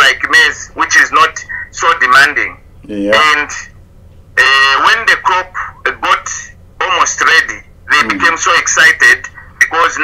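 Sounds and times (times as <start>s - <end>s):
man talking: 1.8s - 3.6s, 4.6s - 10.0s.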